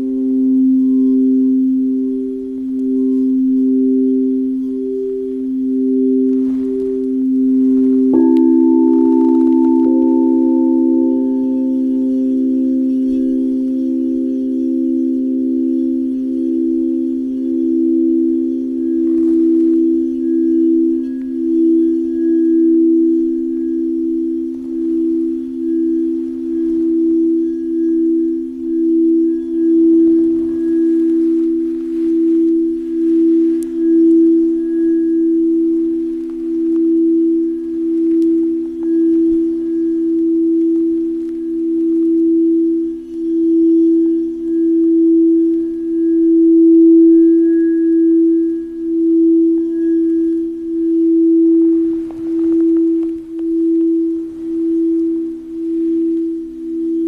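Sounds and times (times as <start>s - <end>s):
crystal singing bowls humming: 0.0s - 57.0s.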